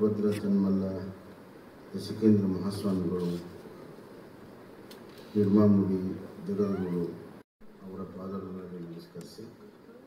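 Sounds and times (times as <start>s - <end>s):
man speaking into a microphone: 0.0s - 1.2s, 1.9s - 3.7s, 5.4s - 9.6s.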